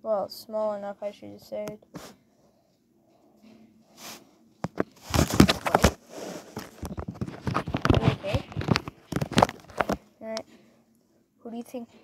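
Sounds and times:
plush toys rustling on carpet: 0:03.9 - 0:10.0.

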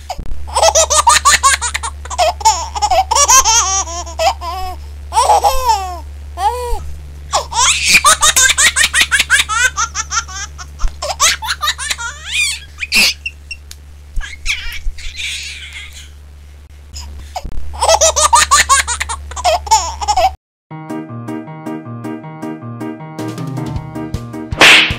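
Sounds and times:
steady low hum: 0:00.0 - 0:20.4
high-pitched childlike laughter: 0:00.5 - 0:06.0, 0:07.3 - 0:13.6, 0:14.2 - 0:16.2, 0:17.8 - 0:20.4.

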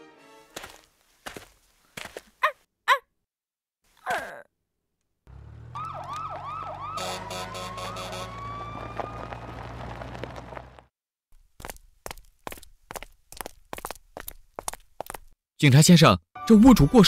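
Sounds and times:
emergency vehicle siren: 0:05.3 - 0:10.8
engine hum: 0:05.3 - 0:10.9.

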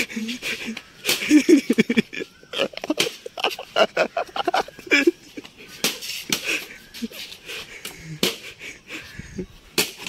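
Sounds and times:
boys laughing and yelping: 0:00.0 - 0:09.6.

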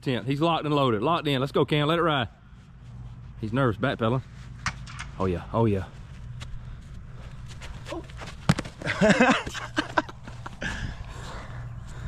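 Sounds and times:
low steady hum: 0:00.0 - 0:12.0
football smacking into hands: 0:08.2 - 0:09.0
laughter: 0:08.8 - 0:11.0.

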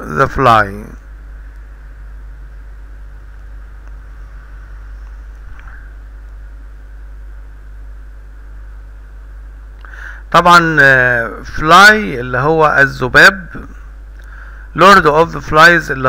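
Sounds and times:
constant hiss: 0:00.0 - 0:16.0
low hum: 0:00.0 - 0:16.0.

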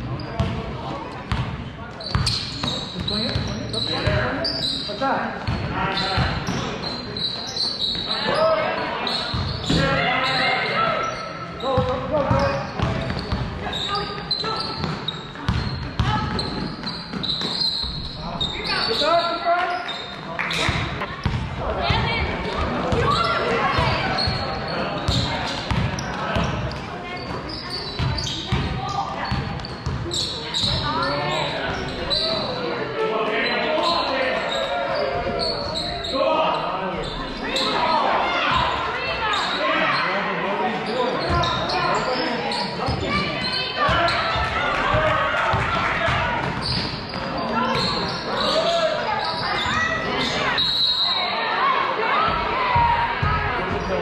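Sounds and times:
people shouting and talking: 0:00.0 - 0:54.0.

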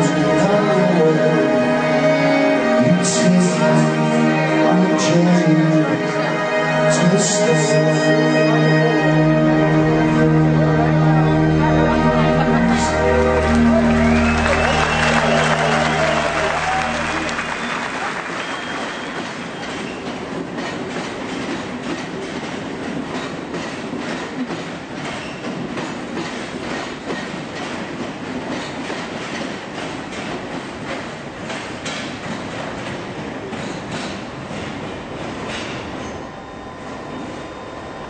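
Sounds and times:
train wheels clattering on rails: 0:18.3 - 0:36.2.

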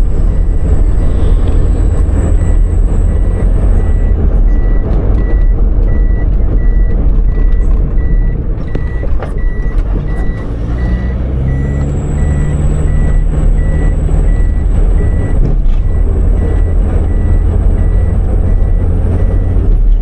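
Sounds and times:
vehicle engine and road rumble: 0:00.0 - 0:20.0.

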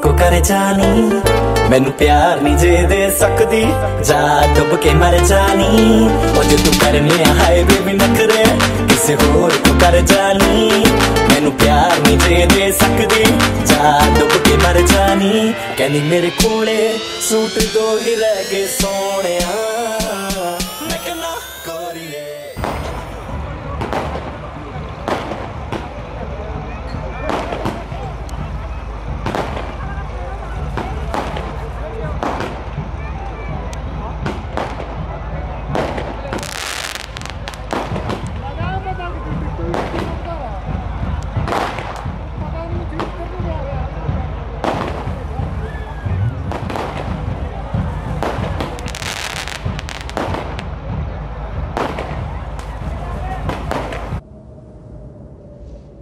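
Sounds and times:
fireworks crackling: 0:05.3 - 0:32.9, 0:33.9 - 0:38.6, 0:41.5 - 0:42.1, 0:46.5 - 0:50.7, 0:51.7 - 0:54.2
fireworks bangs: 0:06.4 - 0:33.0, 0:33.9 - 0:38.6, 0:41.5 - 0:42.3, 0:44.6 - 0:45.4, 0:46.4 - 0:50.7, 0:51.6 - 0:54.2.

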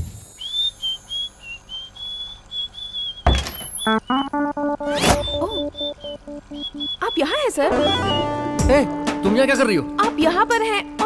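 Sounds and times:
man whistling a tune: 0:00.3 - 0:04.4, 0:05.0 - 0:07.2, 0:07.8 - 0:08.4.

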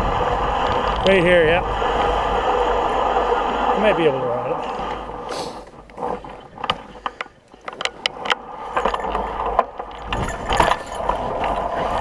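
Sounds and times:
low rumble: 0:00.0 - 0:06.4.

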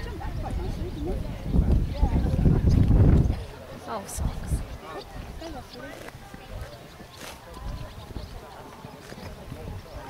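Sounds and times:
hoofbeats on grass: 0:04.7 - 0:10.0.

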